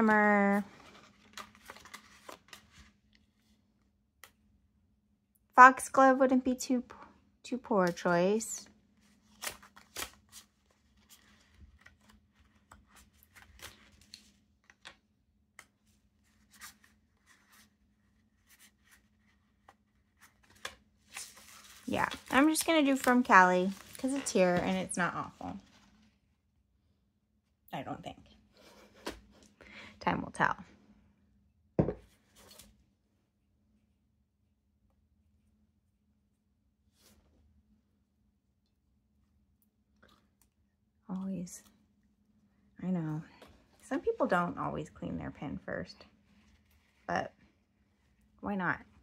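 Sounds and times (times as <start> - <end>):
glass jar knocking on wood: 31.8 - 32.0.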